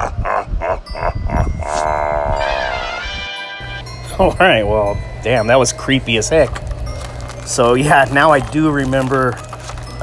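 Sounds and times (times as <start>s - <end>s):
man laughing mockingly: 0.0s - 1.6s
music: 1.9s - 10.0s.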